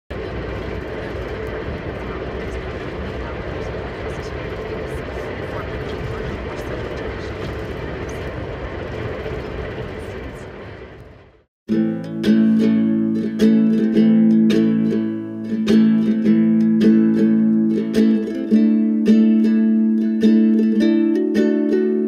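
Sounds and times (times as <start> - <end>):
train wheels rumbling on track: 0.1 - 11.4
plucked guitalele notes: 11.7 - 22.0.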